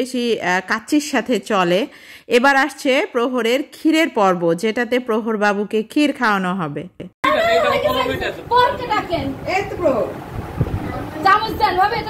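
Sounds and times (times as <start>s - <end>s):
people talking over one another: 7.2s - 9.4s.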